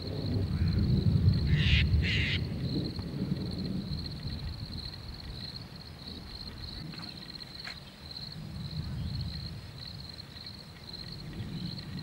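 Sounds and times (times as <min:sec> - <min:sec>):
cricket chorus: 0:00.0 - 0:12.0.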